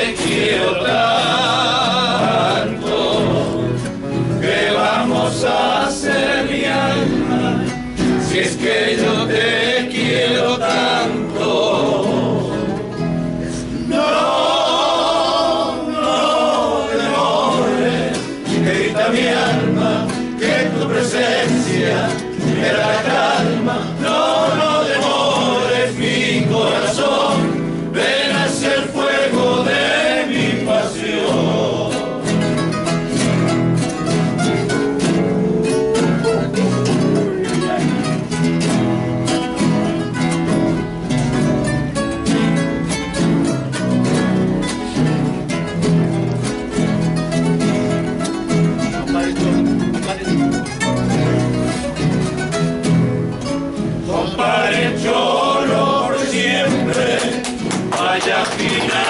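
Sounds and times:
men singing in unison: 0:00.0 - 0:12.9, 0:13.6 - 0:32.6, 0:34.4 - 0:38.0, 0:54.0 - 0:59.0
acoustic guitars strumming: 0:00.0 - 0:59.0.

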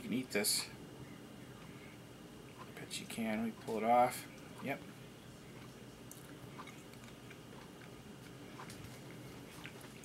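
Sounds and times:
person chewing with closed mouth: 0:05.6 - 0:10.0.

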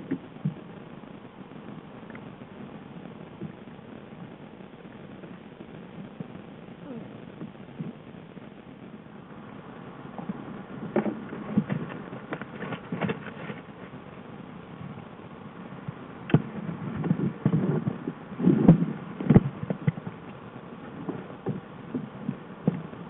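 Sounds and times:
rustling in brush: 0:11.0 - 0:14.2.

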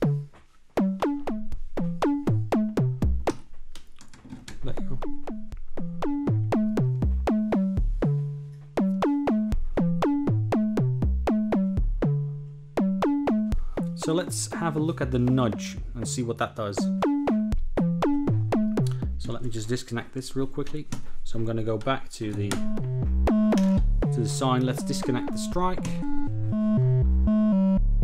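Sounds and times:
low ringing synth notes: 0:26.0 - 0:28.0.

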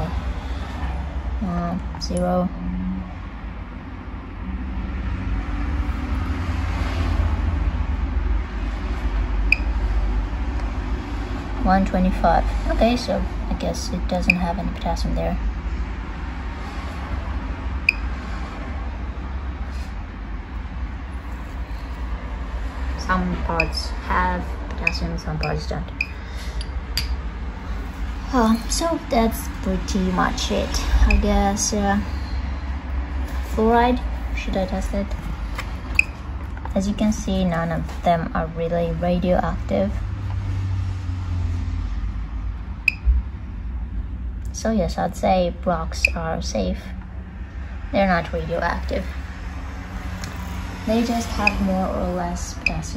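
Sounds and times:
low background rumble: 0:00.0 - 0:52.9.

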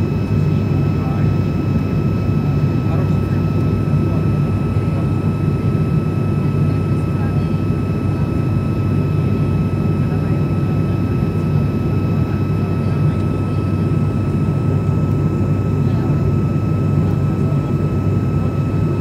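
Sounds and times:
propeller engine drone: 0:00.0 - 0:19.0.

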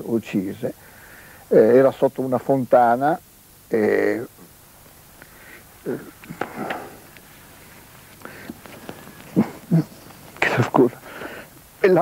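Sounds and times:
man speaking in fragments: 0:10.4 - 0:11.0.

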